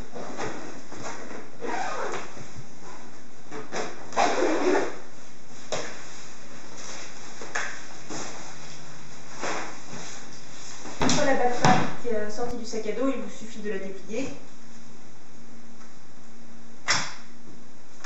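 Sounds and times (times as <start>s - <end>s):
zipper scraping: 0.4s - 2.4s, 3.7s - 5.1s
fabric rustling: 5.1s - 11.6s.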